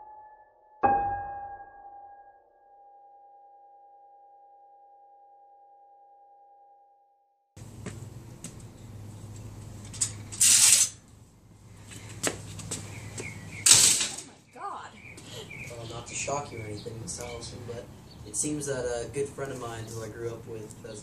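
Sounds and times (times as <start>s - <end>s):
keyboard chord ringing: 0.0s - 7.1s
outdoor background noise: 7.6s - 21.0s.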